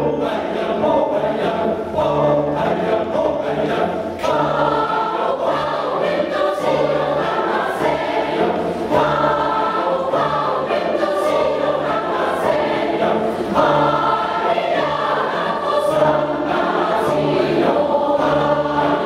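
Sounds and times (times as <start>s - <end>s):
mixed choir singing: 0.0s - 19.0s.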